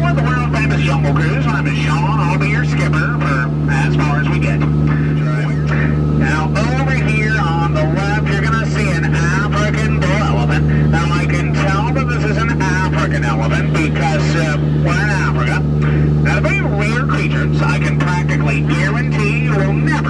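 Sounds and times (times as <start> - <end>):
person talking over loudspeakers: 0.0 - 20.0
truck engine drone: 0.0 - 20.0.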